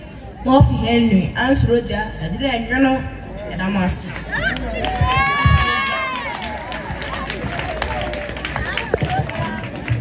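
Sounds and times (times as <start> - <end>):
crowd chatter: 2.7 - 10.0.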